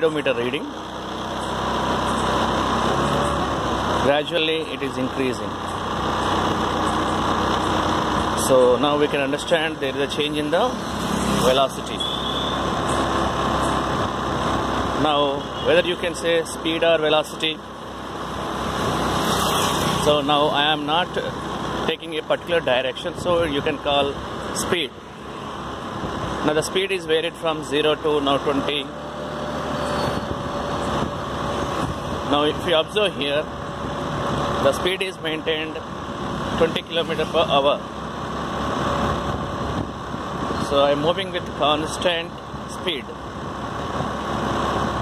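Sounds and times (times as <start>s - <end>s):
rushing road noise: 0.0s - 45.0s
vehicle engine: 0.0s - 45.0s
wind: 0.0s - 45.0s.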